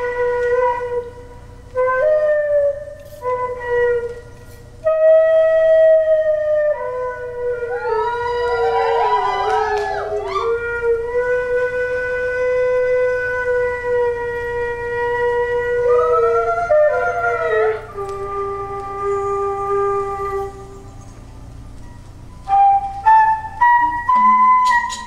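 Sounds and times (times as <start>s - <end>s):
reedy wind instrument melody: 0.0s - 25.0s.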